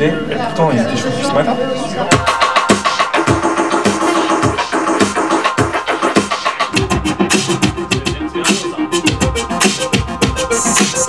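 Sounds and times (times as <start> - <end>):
electronic music: 1.9 - 11.0.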